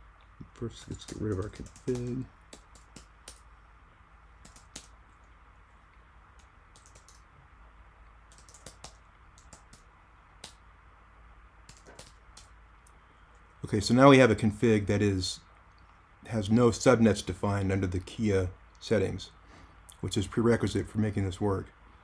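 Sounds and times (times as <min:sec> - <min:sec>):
computer keyboard typing: 0:00.5 - 0:03.5, 0:04.4 - 0:05.0, 0:06.4 - 0:07.3, 0:08.3 - 0:10.6, 0:11.7 - 0:12.5.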